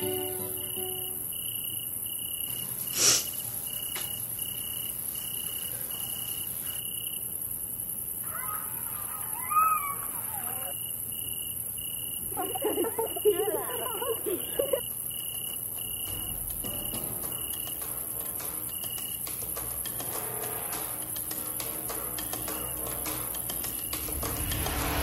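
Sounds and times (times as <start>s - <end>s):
crickets chirping: 0.0s - 25.0s
high insect whine: 0.0s - 25.0s
voices with laughter: 12.3s - 14.9s
loud whoosh: 23.9s - 25.0s.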